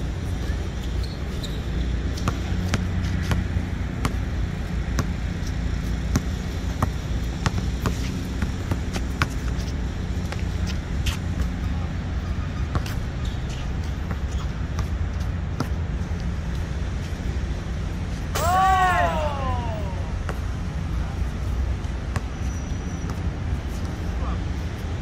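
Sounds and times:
basketball bouncing on hard court: 2.1 - 4.2, 4.9 - 5.2, 6.0 - 9.7, 12.7 - 15.8.

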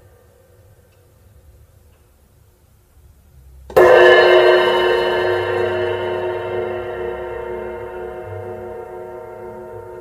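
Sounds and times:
cymbal struck and ringing: 3.7 - 10.0.

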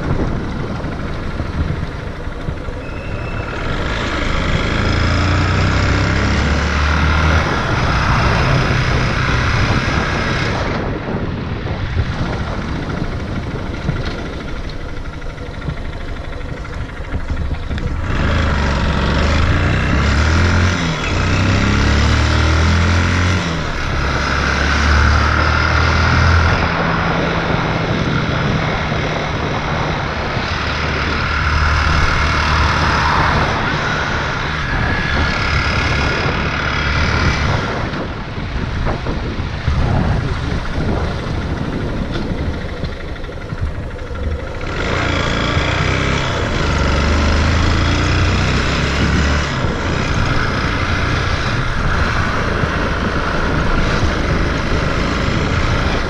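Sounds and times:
vehicle engine rumbling: 0.0 - 56.0.

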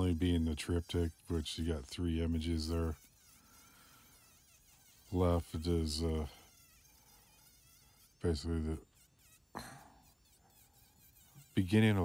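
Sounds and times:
rotary tool grinding wood: 0.0 - 12.0.

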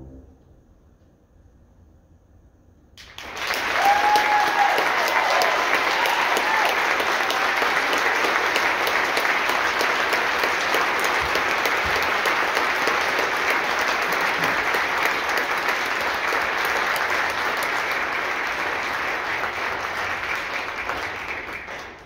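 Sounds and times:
audience applauding: 3.0 - 22.0.

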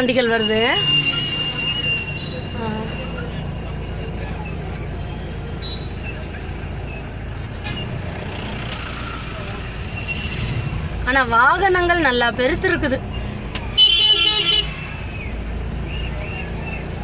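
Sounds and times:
faint voices outside: 0.0 - 17.0
traffic engines rumbling: 0.0 - 17.0.

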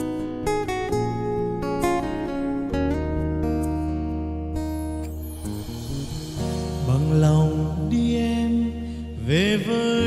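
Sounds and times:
instrumental accompaniment: 0.0 - 9.3.

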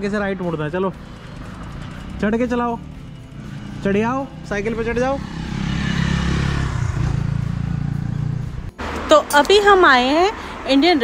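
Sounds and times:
vehicle engine running: 0.0 - 9.0.

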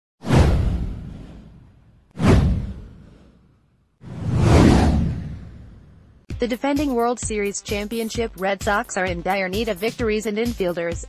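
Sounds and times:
deep boom: 0.2 - 3.3, 4.1 - 6.2
whoosh sound effect: 0.2 - 6.2.

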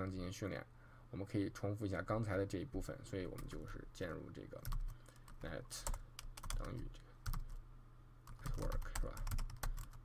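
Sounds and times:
computer keyboard typing: 4.6 - 7.6, 8.2 - 10.0.

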